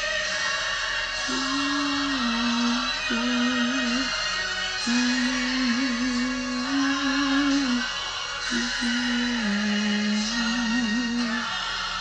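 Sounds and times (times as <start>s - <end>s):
slow worship accompaniment: 0.0s - 12.0s
voice holding long notes: 1.2s - 4.2s, 4.8s - 11.6s.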